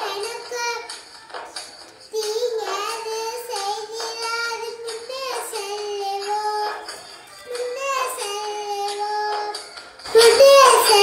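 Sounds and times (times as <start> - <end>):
girl singing: 0.0 - 11.0.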